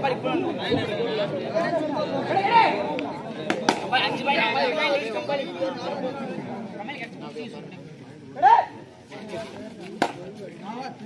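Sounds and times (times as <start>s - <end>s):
voices chattering and calling out: 0.0s - 11.0s.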